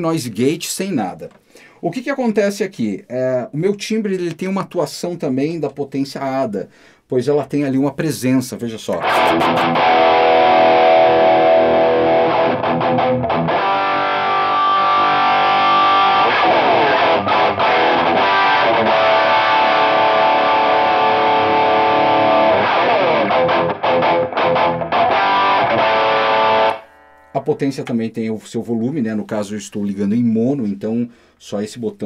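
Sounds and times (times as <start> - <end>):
distorted electric guitar: 8.9 - 27.4.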